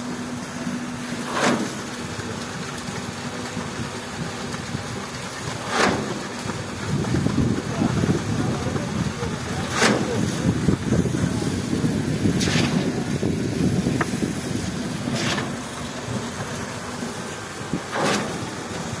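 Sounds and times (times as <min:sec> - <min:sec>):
heavy engine rumble: 0:00.0 - 0:19.0.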